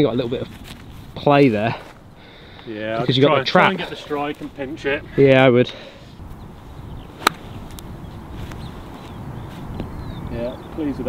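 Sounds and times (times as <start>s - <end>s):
wind on microphone: 6.2s - 11.0s
golf club hitting ball: 7.2s - 7.9s.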